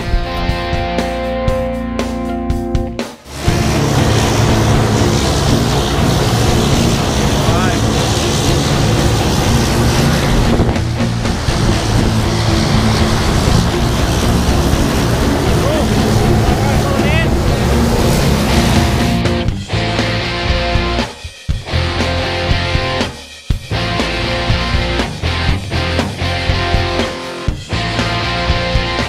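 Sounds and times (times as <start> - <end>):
rushing air: 3.2 - 20.9
propeller aircraft engine drone: 3.3 - 21.0, 21.7 - 23.1, 23.7 - 29.0.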